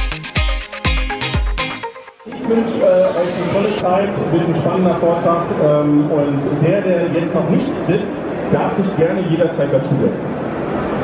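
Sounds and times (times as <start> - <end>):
man talking into a microphone: 2.4 - 10.3.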